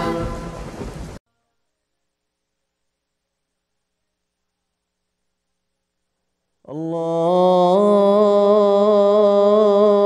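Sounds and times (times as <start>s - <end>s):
rain and thunder effect: 0.0s - 1.2s
sung vocal jingle: 6.6s - 10.0s.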